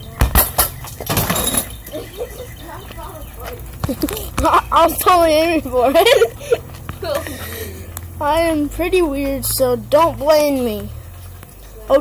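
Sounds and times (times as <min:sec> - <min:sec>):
faint talk: 0:01.9 - 0:06.0.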